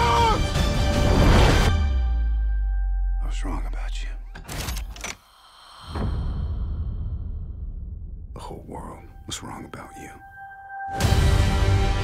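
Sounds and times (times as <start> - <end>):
breathy voice sounds: 5.0 - 7.6.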